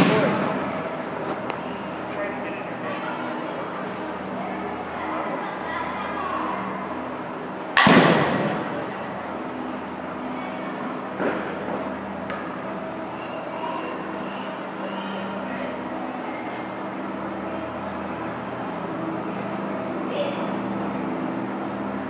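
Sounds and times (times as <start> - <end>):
steady background hum: 0.0 - 22.0
bat striking softball: 7.8 - 8.7.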